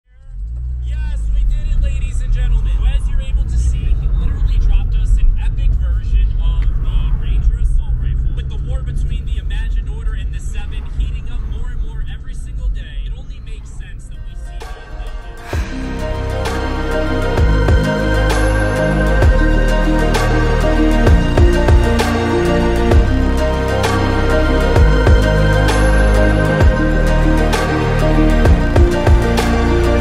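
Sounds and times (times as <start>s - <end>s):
car road and engine rumble: 0.0s - 30.0s.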